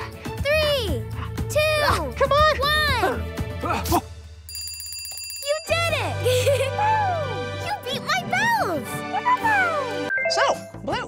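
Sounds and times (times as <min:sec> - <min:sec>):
cheerful children's music: 0:00.0 - 0:04.0, 0:05.5 - 0:11.0
bell ringing rapidly: 0:04.4 - 0:06.2.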